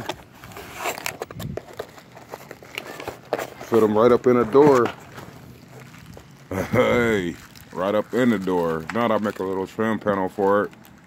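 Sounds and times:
packaging rustling: 0:00.0 - 0:11.0.

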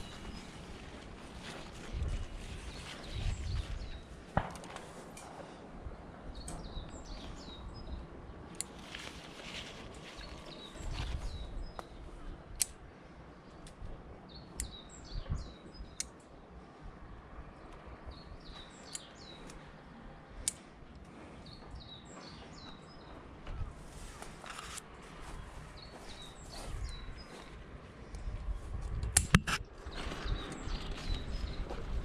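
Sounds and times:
songbird chirping: 0:06.3 - 0:12.8, 0:13.4 - 0:16.6, 0:17.2 - 0:28.4.

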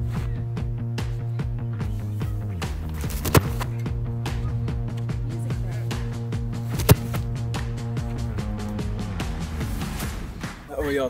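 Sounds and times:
background music with steady beat: 0:00.0 - 0:11.0
football kicked: 0:02.8 - 0:03.8, 0:06.6 - 0:07.7.

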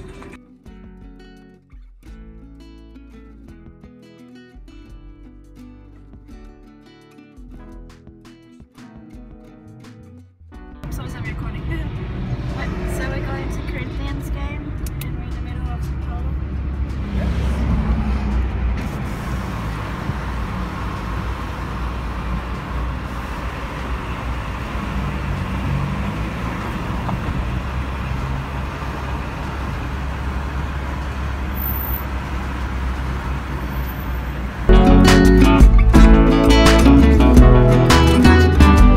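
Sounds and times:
road and engine rumble: 0:00.0 - 0:00.6, 0:10.1 - 0:38.9.

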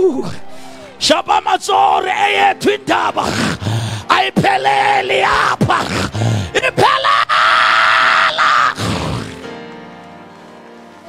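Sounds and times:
man shouting through a microphone: 0:00.0 - 0:08.8.

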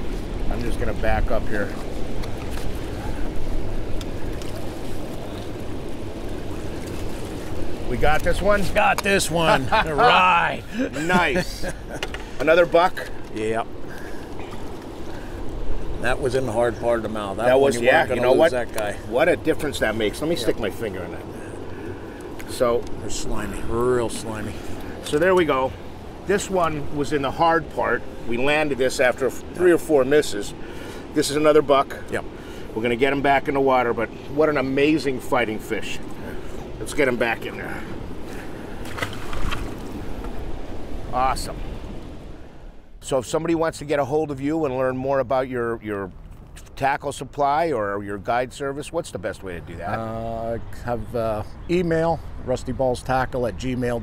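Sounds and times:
river water rushing: 0:00.0 - 0:42.9
wind: 0:00.0 - 0:54.0.

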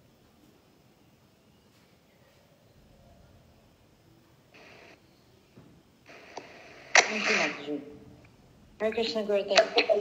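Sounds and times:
bursts of hiss: 0:06.1 - 0:07.8
woman's voice over video call: 0:07.0 - 0:08.0, 0:08.8 - 0:10.0.

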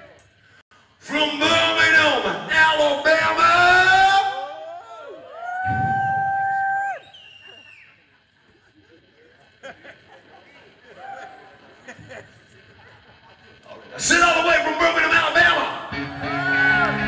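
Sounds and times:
audience cheering and whistling: 0:04.4 - 0:08.2, 0:10.8 - 0:11.8, 0:15.7 - 0:17.0.

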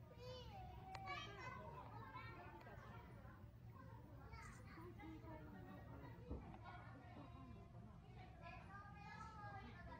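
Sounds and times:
faint children chattering and calling: 0:00.0 - 0:09.9.

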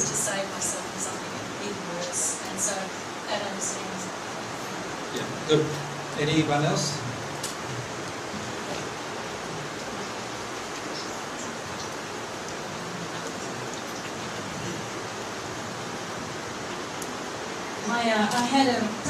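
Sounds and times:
room background hiss: 0:00.0 - 0:19.0.

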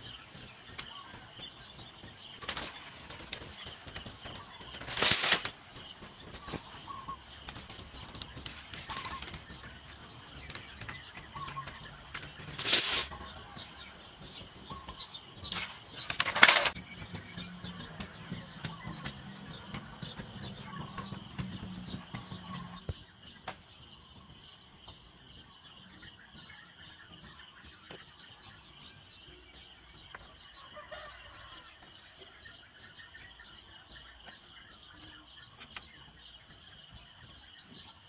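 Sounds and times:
insects chirping: 0:00.0 - 0:38.0
bamboo poles knocking: 0:04.4 - 0:23.6.

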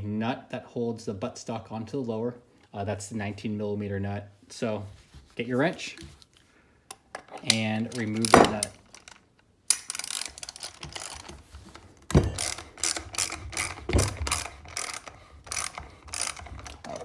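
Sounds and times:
ratchet wrench clicking: 0:09.7 - 0:11.4, 0:12.4 - 0:17.0.

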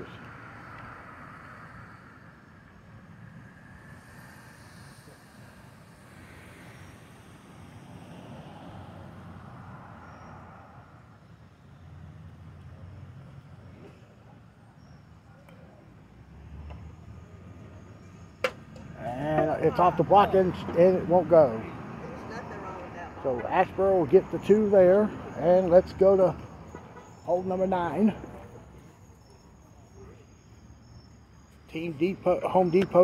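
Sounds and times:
distant road traffic rumble: 0:00.0 - 0:33.0.

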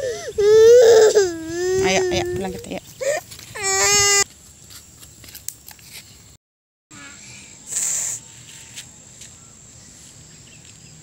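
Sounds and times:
child whining cry: 0:00.0 - 0:04.2.

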